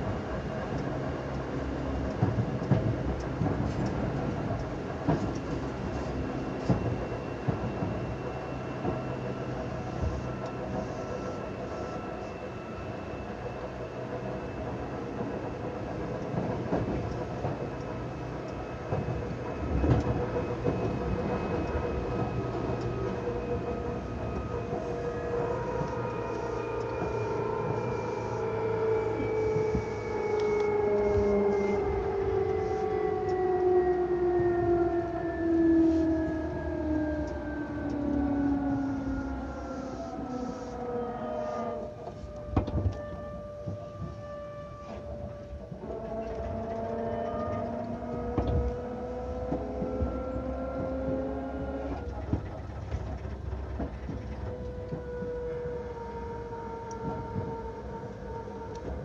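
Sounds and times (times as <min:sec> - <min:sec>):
electric train motor whine: 0:00.0 - 0:59.0
wheels rumbling on rail: 0:00.0 - 0:59.0.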